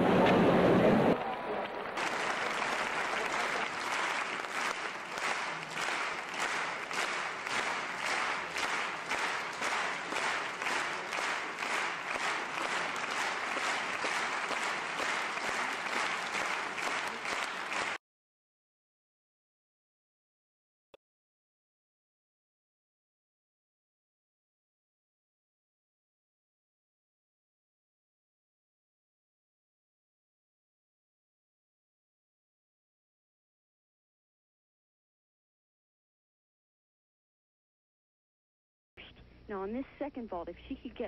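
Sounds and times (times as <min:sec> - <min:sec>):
crowd clapping in unison: 0:01.1 - 0:18.0.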